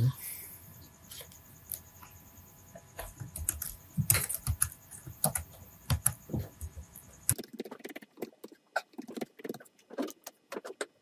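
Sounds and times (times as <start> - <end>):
computer keyboard typing: 3.0 - 11.0.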